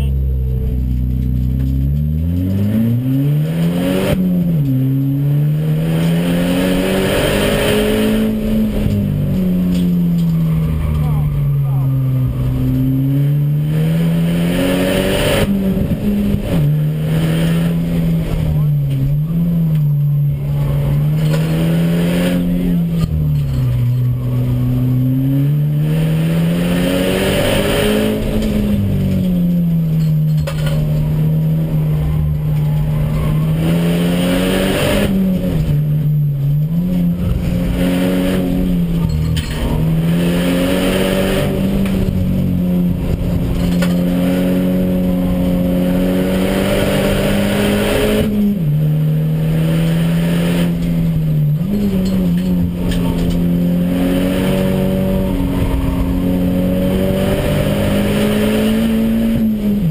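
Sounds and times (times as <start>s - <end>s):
race car engine revving: 0.0s - 59.9s.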